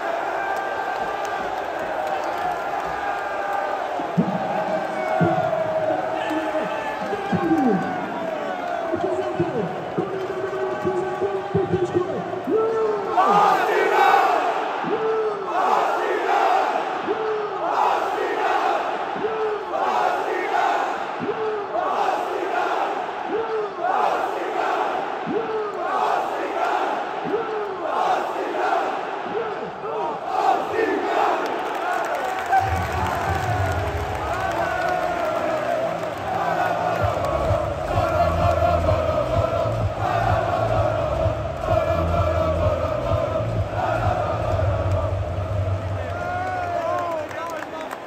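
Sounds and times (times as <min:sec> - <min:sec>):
crowd rhythmic shout: 0:00.0 - 0:48.0
football crowd chanting: 0:12.5 - 0:46.7.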